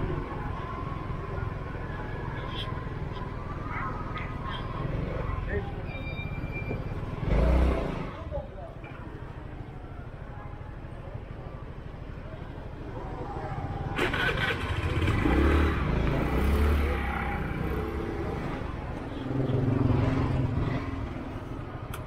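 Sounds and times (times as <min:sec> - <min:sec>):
scooter engines running: 0:06.8 - 0:22.0.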